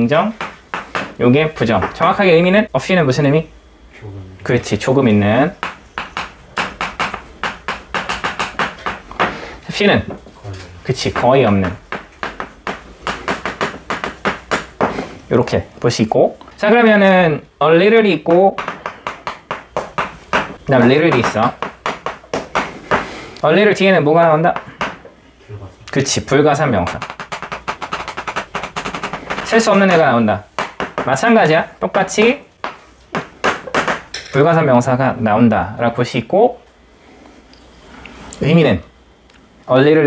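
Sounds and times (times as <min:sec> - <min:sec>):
chalk tapping and scratching on blackboard: 0:00.3 - 0:02.2, 0:05.4 - 0:09.4, 0:10.9 - 0:15.2, 0:18.3 - 0:23.2, 0:26.7 - 0:34.1
chalk scratching on chalkboard: 0:11.0 - 0:15.2, 0:26.8 - 0:31.1.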